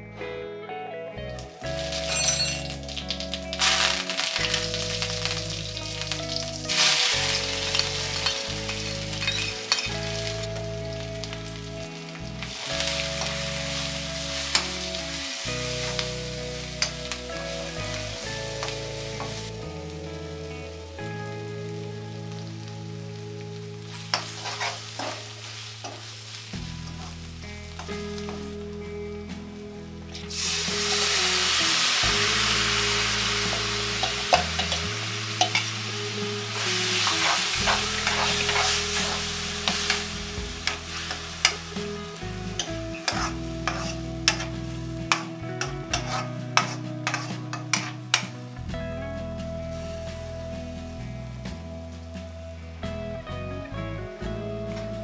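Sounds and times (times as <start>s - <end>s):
oil sizzling in a pan: 1.6s - 28.9s, 30.1s - 48.7s, 49.6s - 51.1s
lentils poured into hot oil: 1.8s - 11.6s, 23.9s - 27.4s, 30.2s - 45.3s
ladle scraping a pan: 24.1s - 26.0s, 36.6s - 41.6s, 43.1s - 44.5s, 45.9s - 48.2s.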